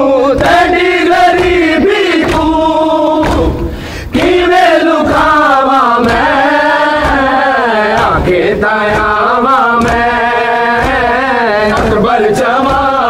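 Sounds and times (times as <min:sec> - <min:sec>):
crowd of men chanting: 0:00.0 - 0:13.0
rhythmic chest-beating: 0:00.0 - 0:13.0.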